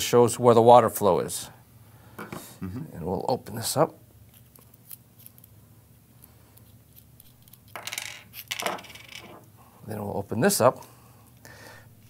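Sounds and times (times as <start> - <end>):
metal parts set down on wood: 2.2 - 2.5, 7.8 - 9.4.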